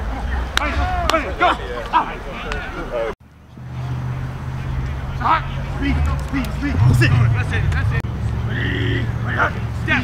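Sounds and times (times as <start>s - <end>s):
steady low hum: 6.0s - 9.4s.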